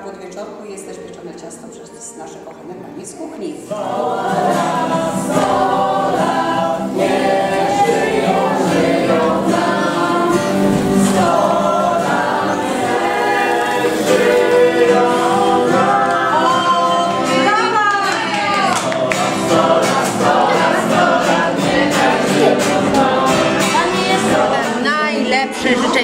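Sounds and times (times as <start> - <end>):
acoustic guitar: 0.0 - 26.0
group singing a birthday song: 3.6 - 26.0.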